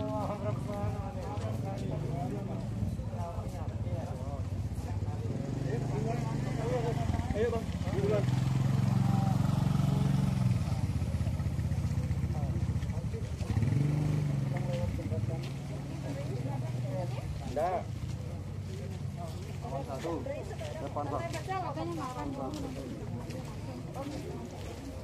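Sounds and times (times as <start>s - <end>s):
faint voices: 0.0s - 25.0s
engine running: 5.4s - 19.4s.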